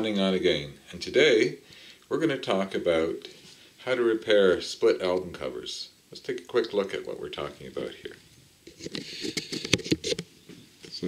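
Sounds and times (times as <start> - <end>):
handling taps and rustles: 8.6 - 11.0.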